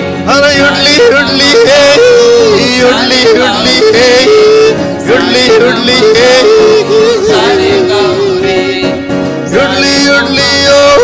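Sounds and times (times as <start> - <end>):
strummed acoustic guitars: 0.0 - 11.0
man singing: 0.2 - 11.0.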